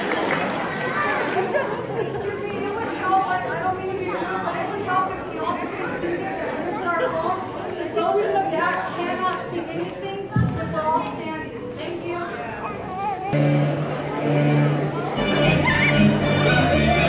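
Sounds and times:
audience chatter: 0.0 - 17.0.

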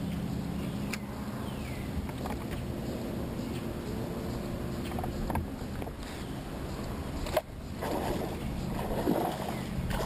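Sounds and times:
steady low hum: 0.0 - 10.0
water lapping against boat hull: 7.2 - 10.0.

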